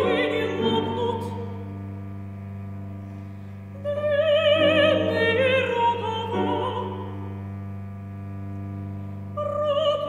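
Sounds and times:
cello low bowed note: 0:00.0 - 0:10.0.

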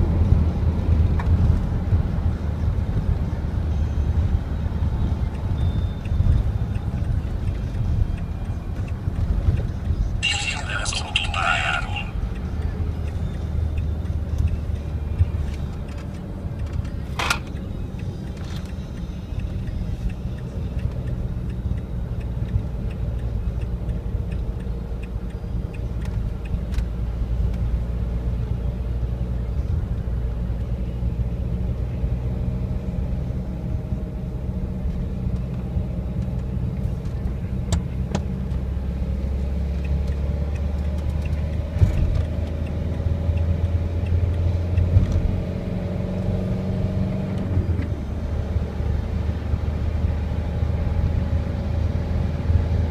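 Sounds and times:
car engine and road rumble: 0:00.0 - 0:52.9.

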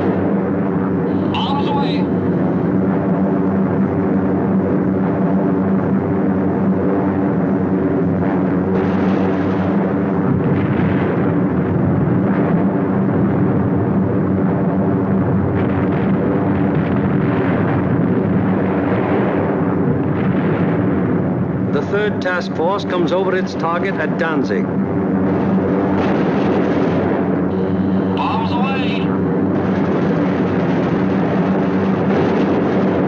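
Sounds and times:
piston engines droning: 0:00.0 - 0:33.0.

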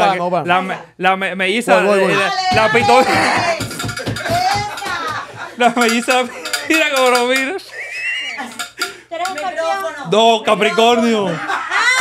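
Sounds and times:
metallic jingling and clinking: 0:03.6 - 0:07.5.

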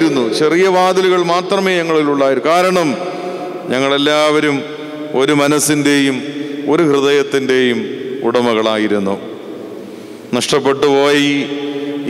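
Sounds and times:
man chanting into a microphone: 0:10.3 - 0:12.0.

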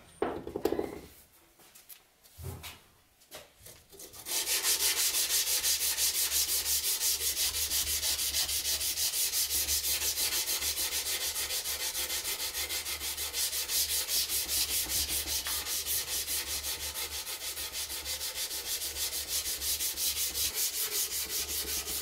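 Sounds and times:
knife blade being sanded: 0:04.0 - 0:22.0.

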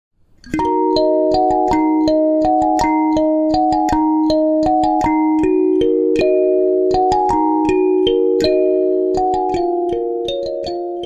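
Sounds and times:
kalimba melody: 0:00.4 - 0:11.0.

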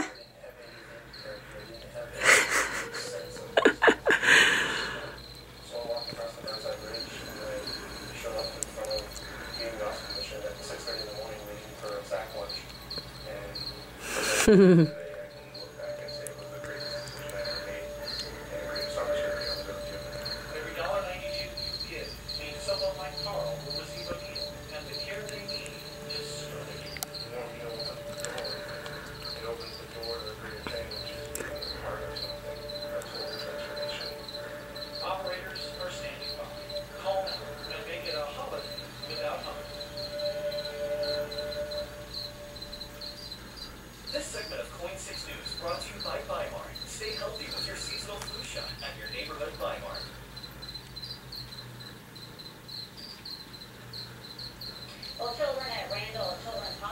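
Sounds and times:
cricket chirping: 0:00.0 - 0:56.9.

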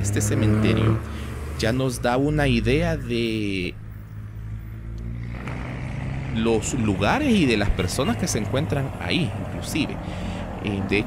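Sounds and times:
road traffic engines humming: 0:00.0 - 0:11.0.

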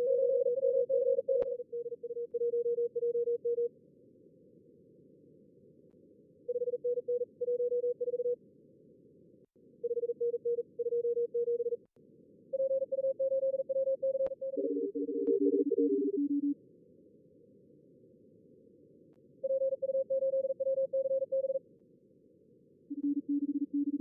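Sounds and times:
morse code beeps: 0:12.6 - 0:16.5, 0:22.9 - 0:24.0.

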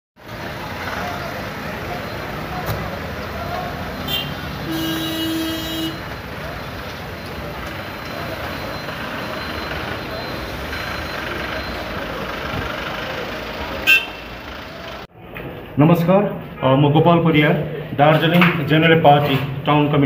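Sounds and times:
street traffic: 0:00.2 - 0:20.0
vehicle horn honking: 0:04.0 - 0:06.1, 0:13.8 - 0:14.4.

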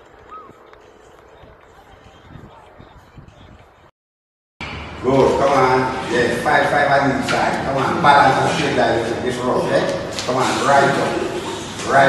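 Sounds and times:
low outdoor hum: 0:00.0 - 0:03.9, 0:04.6 - 0:12.0.

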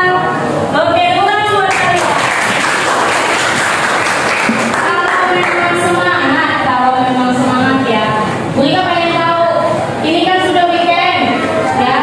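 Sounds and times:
students clapping: 0:01.7 - 0:05.9
voices: 0:04.6 - 0:12.0.

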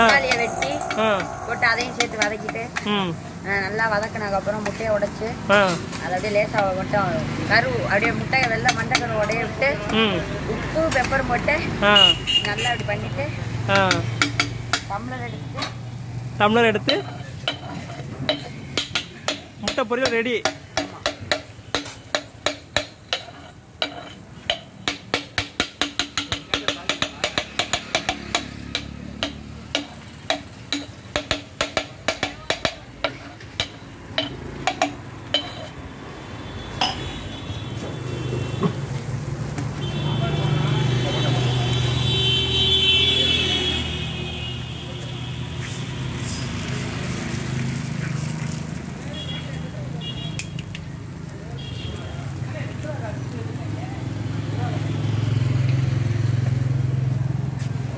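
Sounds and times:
steel tumbler striking iron griddle: 0:16.8 - 0:35.8.

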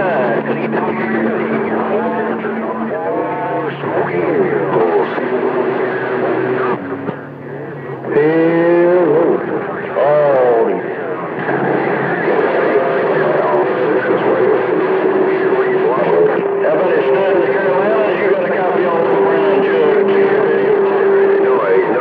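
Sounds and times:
garbled radio voices: 0:00.0 - 0:22.0.

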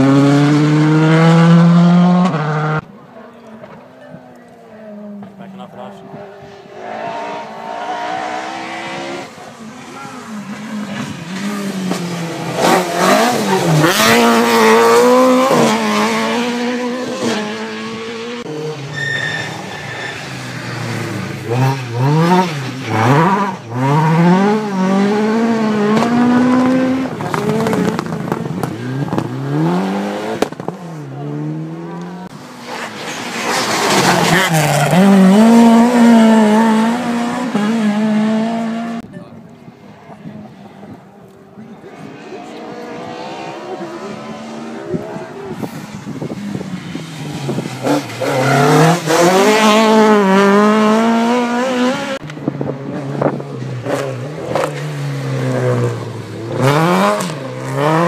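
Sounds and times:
rally cars passing revving: 0:00.0 - 0:58.0.

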